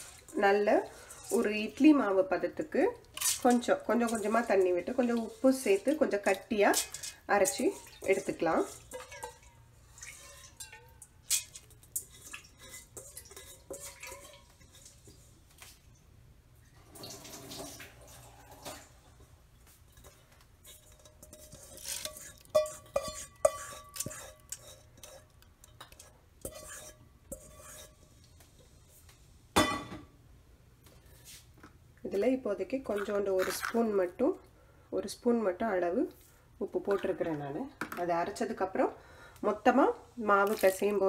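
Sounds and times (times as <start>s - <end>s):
water drips and splashes: 3.0s - 16.0s, 16.8s - 18.9s
steel vessels clinking: 3.1s - 15.1s, 19.9s - 28.1s.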